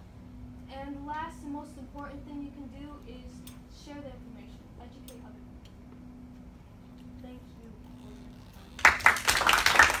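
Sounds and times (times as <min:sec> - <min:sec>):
small group clapping: 0:08.8 - 0:10.0.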